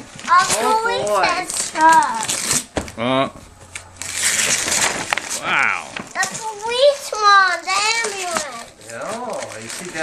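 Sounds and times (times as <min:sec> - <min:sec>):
cardboard box and paper rustling: 0:00.1 - 0:02.7, 0:04.0 - 0:10.0
voices exclaiming: 0:05.4 - 0:06.0.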